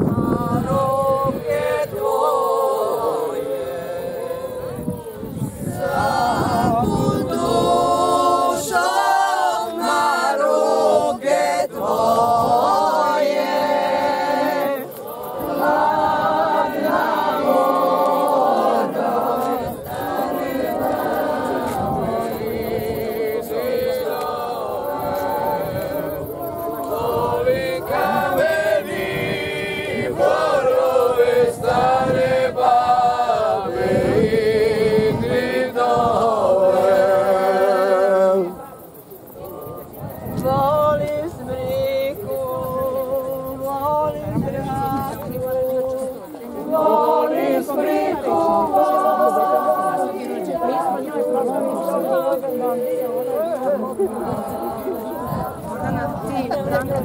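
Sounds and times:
unaccompanied group singing: 0.0s - 57.0s.

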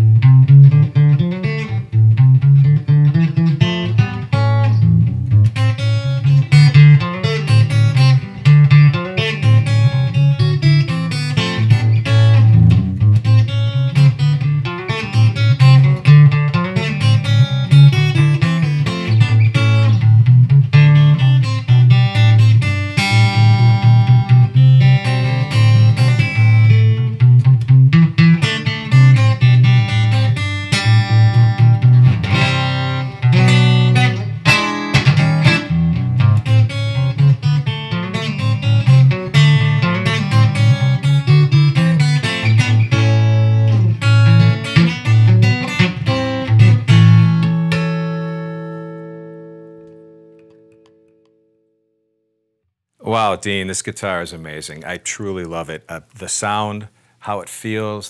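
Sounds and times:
guitar picking and chords: 0.0s - 51.7s.

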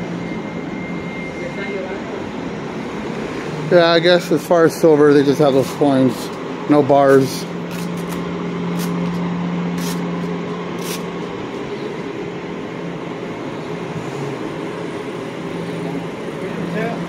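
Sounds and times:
street traffic hum: 0.0s - 17.0s.

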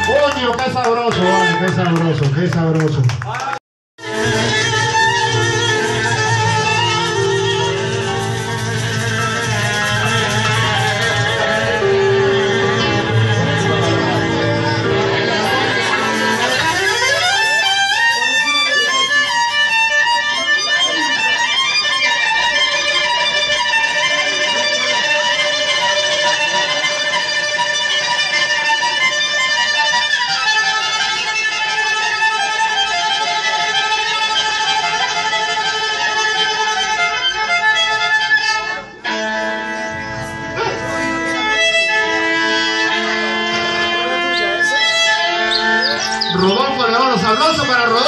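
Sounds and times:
violin melody: 0.0s - 2.3s, 4.0s - 48.0s
live ensemble music: 0.0s - 2.9s, 4.0s - 48.0s.

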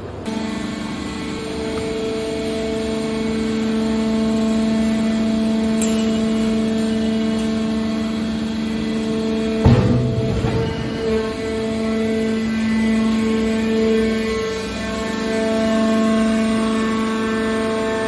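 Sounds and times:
hydraulic power unit humming: 0.0s - 18.0s
loud metal clank: 9.6s - 11.4s.

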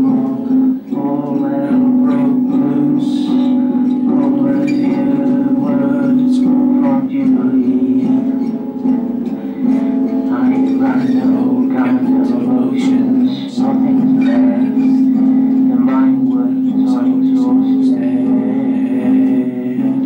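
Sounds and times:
man singing: 0.0s - 20.0s
strummed acoustic guitar: 0.0s - 20.0s.

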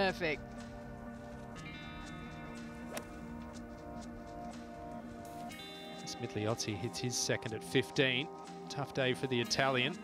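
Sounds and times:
background music: 0.0s - 10.0s
golf club striking ball: 2.8s - 3.4s.

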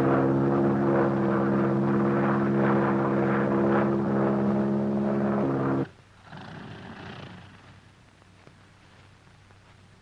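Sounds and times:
propeller plane engine drone: 0.0s - 8.2s.

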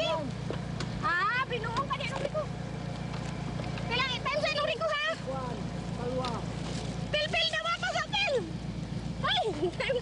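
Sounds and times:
voices calling out: 0.0s - 10.0s.

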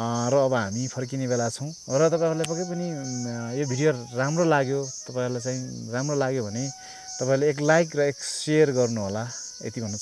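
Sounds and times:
high-pitched insect chorus: 0.0s - 10.0s
man talking: 0.0s - 10.0s.

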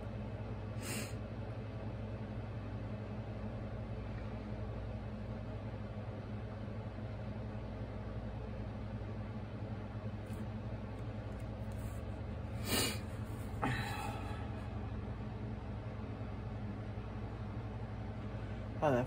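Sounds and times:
air conditioner whirring: 0.0s - 19.0s
heated roller machine humming: 0.0s - 19.0s.

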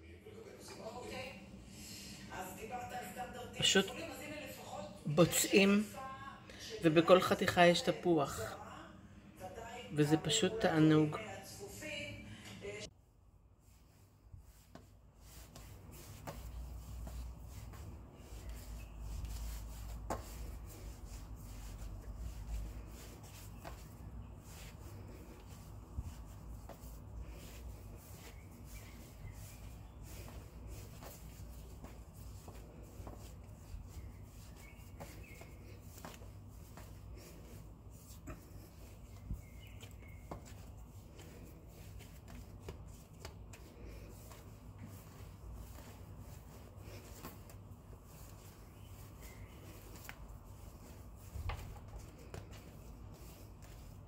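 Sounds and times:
hands kneading dough: 13.5s - 54.0s.

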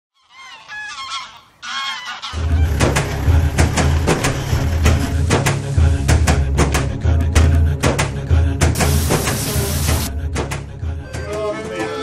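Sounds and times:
geese honking in flight: 0.2s - 3.3s.

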